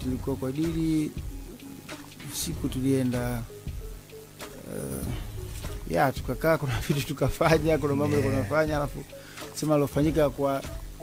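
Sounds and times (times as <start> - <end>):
person speaking: 4.5 - 10.4.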